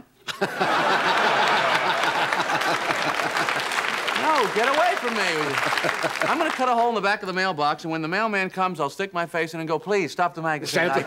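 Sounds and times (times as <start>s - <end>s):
audience laughing: 0.3s - 6.6s
audience applauding: 0.5s - 7.1s.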